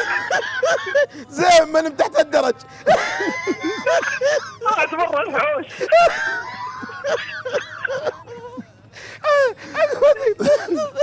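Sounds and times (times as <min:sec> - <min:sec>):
man laughing hard: 0:00.0 - 0:01.3, 0:02.8 - 0:04.9, 0:05.7 - 0:11.0.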